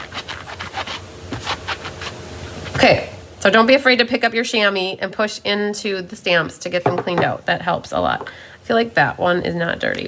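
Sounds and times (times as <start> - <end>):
rubber stamp rubbing on chamois: 0.0 - 2.2.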